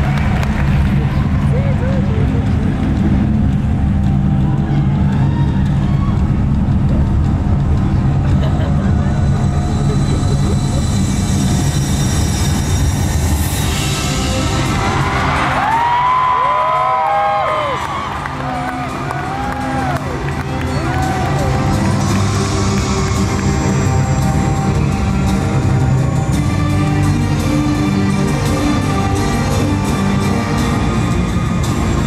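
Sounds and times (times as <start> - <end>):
crowd cheering and whooping: 0.0 - 2.0, 4.6 - 6.9, 14.5 - 23.7
loud live concert music: 0.0 - 32.0.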